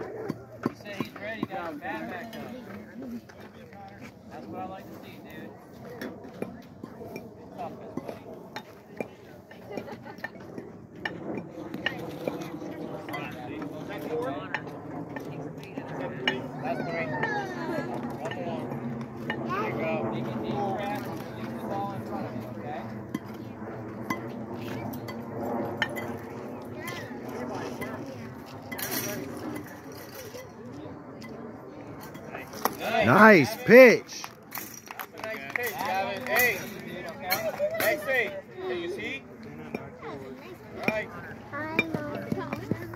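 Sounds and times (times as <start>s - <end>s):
overlapping chatter of voices: 0.0s - 42.9s.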